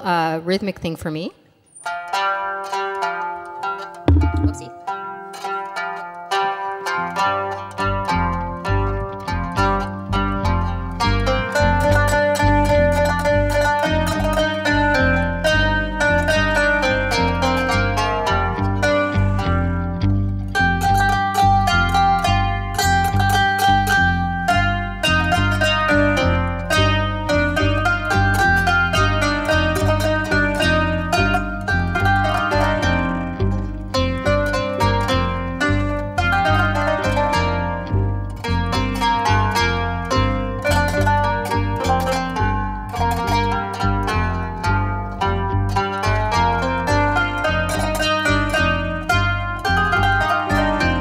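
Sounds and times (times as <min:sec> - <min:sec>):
plucked zither notes: 0:01.8 - 0:51.0
upright bass plucking: 0:03.9 - 0:05.1, 0:06.9 - 0:51.0.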